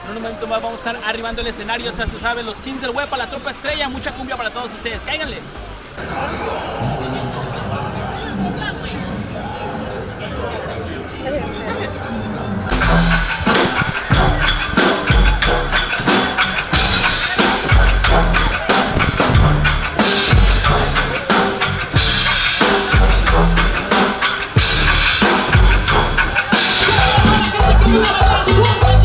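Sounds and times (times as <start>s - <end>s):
cumbia band music: 12.2s - 29.0s
kick drum and rimshot beat: 26.8s - 29.0s.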